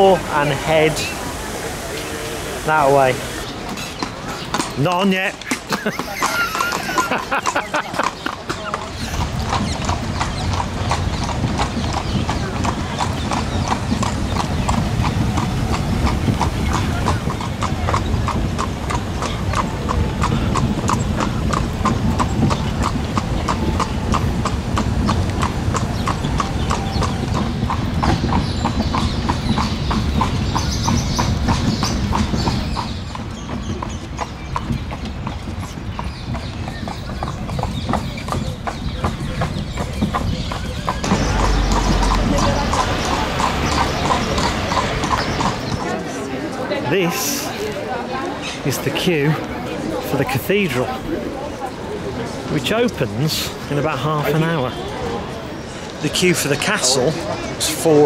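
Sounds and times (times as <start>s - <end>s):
horse hooves clip-clopping on pavement: 2.9s - 58.0s
low rumble: 41.0s - 44.7s.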